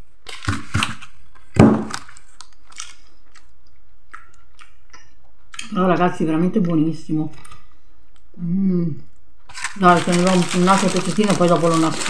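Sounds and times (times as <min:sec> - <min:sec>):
person chewing food: 0:02.4 - 0:05.7.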